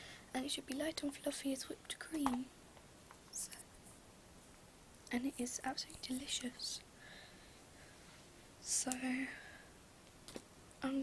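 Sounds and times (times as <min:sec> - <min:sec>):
faint room hiss: 0:00.0 - 0:11.0
person speaking softly: 0:00.4 - 0:02.5, 0:05.1 - 0:06.9, 0:08.6 - 0:09.5.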